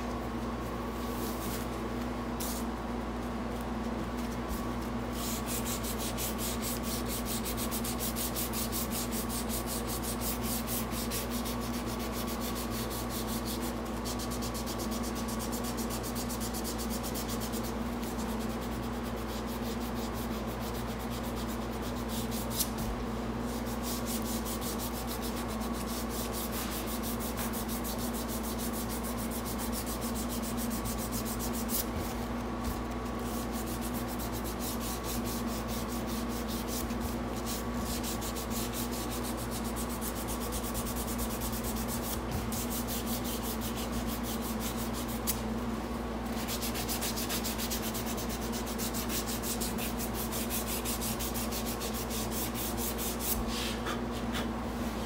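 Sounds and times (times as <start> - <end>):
steady low hum: 0.0 - 55.0
sandpaper rubbing on wood: 5.1 - 22.8, 23.5 - 31.9, 33.1 - 45.4, 46.3 - 54.0.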